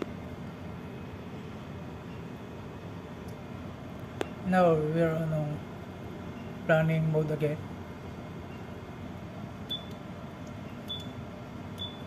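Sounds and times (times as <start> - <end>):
background hum: 0.0 - 12.0
console clicks with beeps: 9.7 - 10.0, 10.9 - 11.1.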